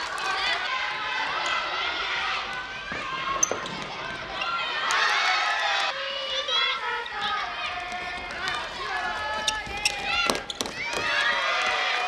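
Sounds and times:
running on wooden court: 0:07.2 - 0:12.0
shoe squeaks: 0:09.3 - 0:10.8.

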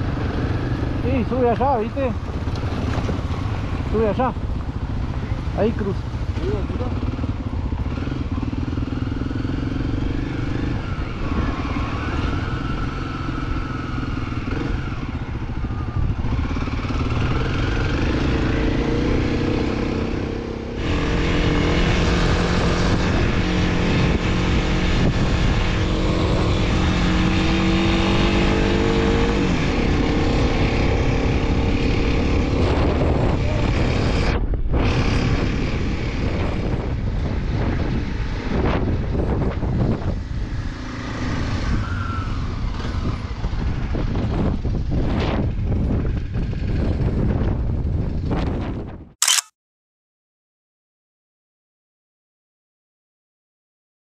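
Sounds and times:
motorcycle engine revving: 0:00.0 - 0:47.2
wind noise on microphone: 0:07.0 - 0:49.2.

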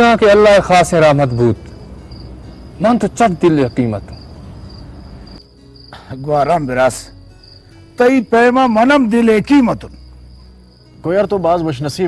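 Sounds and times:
spoken dialogue: 0:00.0 - 0:01.8, 0:02.6 - 0:04.3, 0:06.0 - 0:07.2, 0:07.9 - 0:10.0, 0:11.0 - 0:12.0
crickets chirping: 0:00.0 - 0:12.0.

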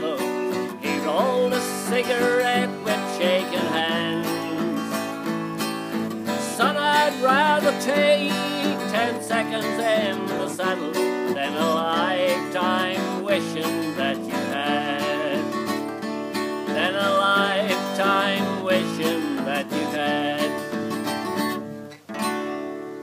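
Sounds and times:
man singing: 0:00.0 - 0:21.3
strummed acoustic guitar: 0:00.0 - 0:23.0.

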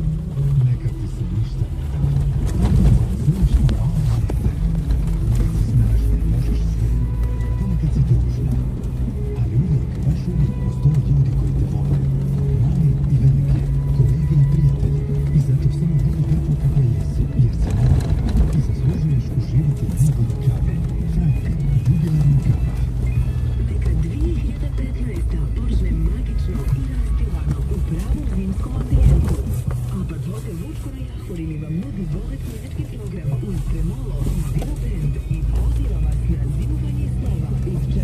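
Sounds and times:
car engine low rumble: 0:00.0 - 0:38.0
music with singing: 0:00.0 - 0:38.0.

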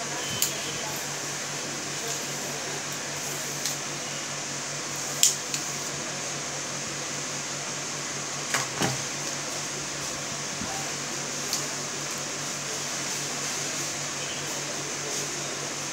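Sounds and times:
steady background hum: 0:00.0 - 0:15.9.

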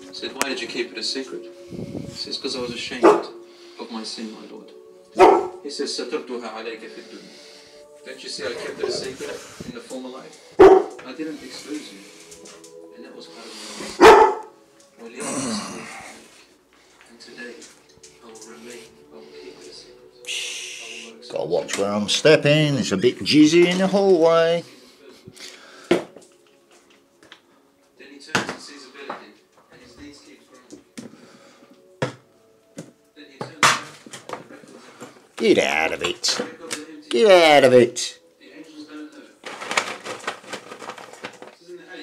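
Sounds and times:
dog barking: 0:03.0 - 0:03.4, 0:05.2 - 0:05.6, 0:10.6 - 0:11.0, 0:14.0 - 0:14.6
objects knocking and clinking: 0:39.4 - 0:41.6.

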